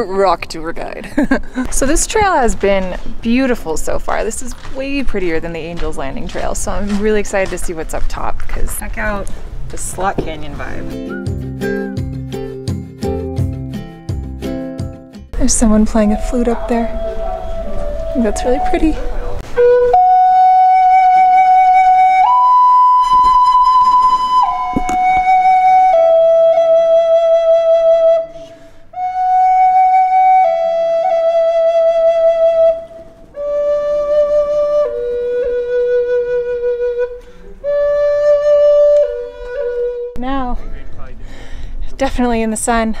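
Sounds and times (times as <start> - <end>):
wooden flute playing slow melody: 15.5 - 40.2.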